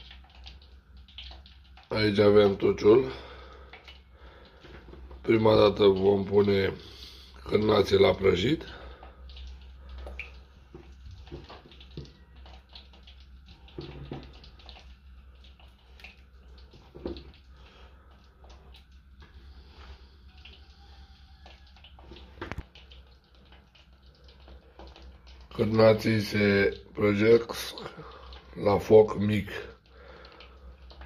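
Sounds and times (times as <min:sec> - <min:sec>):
sausages frying in fat: 0:00.0 - 0:31.0.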